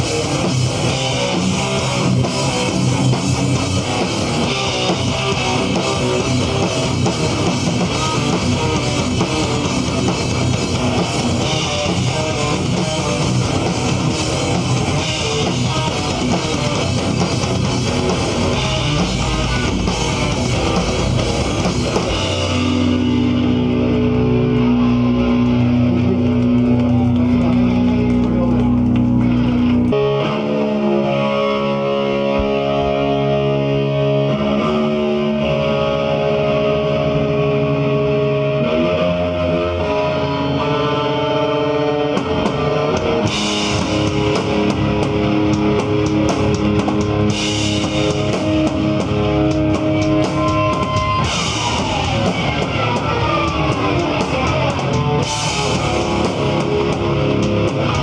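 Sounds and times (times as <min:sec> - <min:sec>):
drum and cymbal hits: 0:00.0 - 0:24.0, 0:42.1 - 0:58.0
bass guitar: 0:00.0 - 0:58.0
distorted electric guitars: 0:00.0 - 0:58.0.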